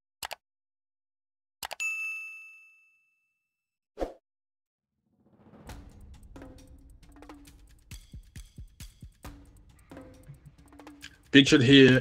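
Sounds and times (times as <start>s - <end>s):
bright bell ding: 1.8s - 3.3s.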